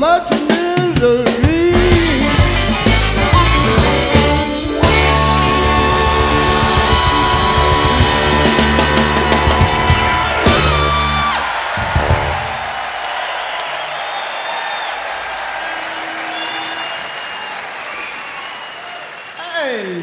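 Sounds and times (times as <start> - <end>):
live band final chord: 1.5 - 11.4
audience applauding and cheering: 2.0 - 20.0
whistles from audience: 5.1 - 19.5.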